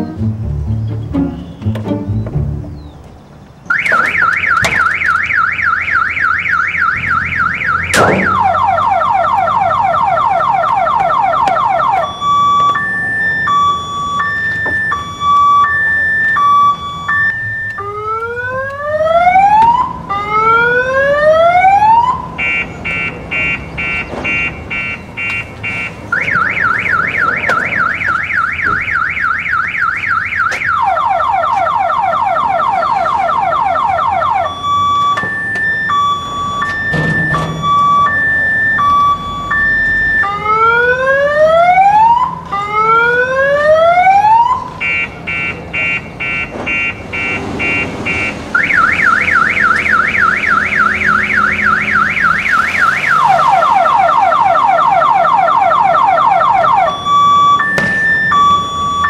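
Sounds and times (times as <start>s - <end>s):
car alarm siren: 3.7s - 59.0s.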